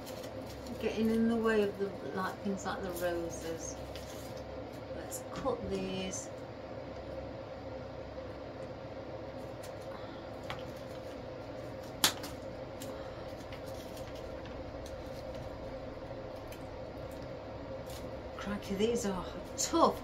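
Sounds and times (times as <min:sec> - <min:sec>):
low room hum: 0:00.0 - 0:20.0.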